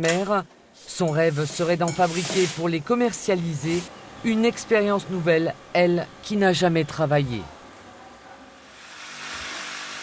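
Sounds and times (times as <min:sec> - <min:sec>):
hose spraying water on soil: 0:01.3 - 0:02.7.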